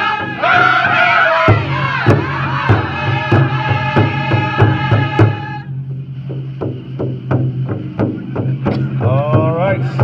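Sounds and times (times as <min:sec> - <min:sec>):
choir holding a note: 0:00.0 - 0:05.7
drum beating steady pulse: 0:00.0 - 0:10.0.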